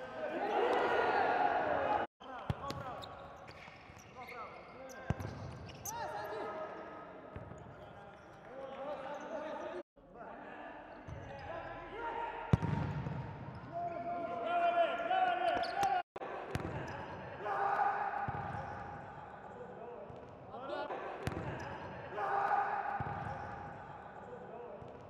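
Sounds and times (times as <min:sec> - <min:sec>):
players shouting: 0:00.0 - 0:02.1, 0:14.3 - 0:19.2, 0:20.6 - 0:23.7
ball kicked hard in hall: 0:12.5 - 0:13.5.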